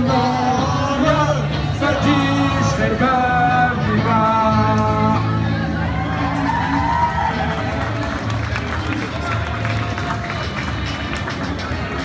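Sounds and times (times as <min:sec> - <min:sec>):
background music: 0:00.0 - 0:12.0
crowd talking: 0:00.0 - 0:12.0.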